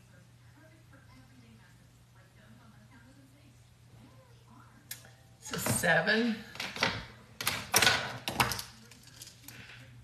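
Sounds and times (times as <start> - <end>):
small objects clattering on tabletop: 6.5 - 9.9.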